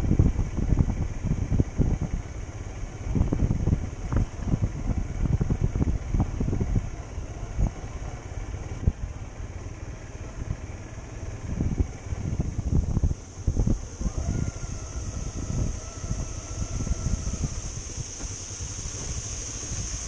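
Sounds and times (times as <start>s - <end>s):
motorcycle engine rumbling: 0.0s - 20.0s.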